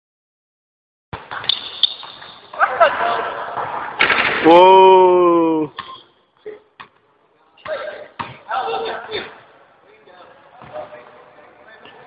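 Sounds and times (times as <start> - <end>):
echoing indoor court ambience: 1.2 - 12.0.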